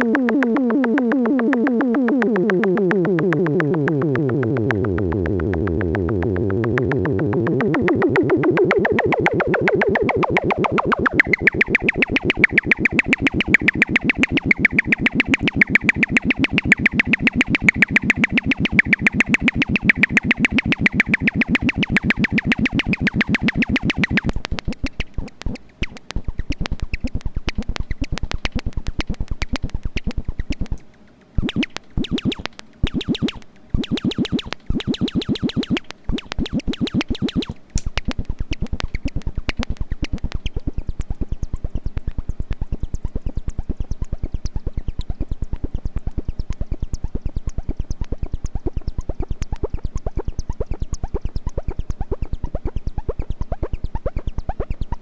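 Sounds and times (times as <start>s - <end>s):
buzzy synthesizer pulse: 0.0s - 29.3s
sparse clicking pulse: 0.0s - 55.0s.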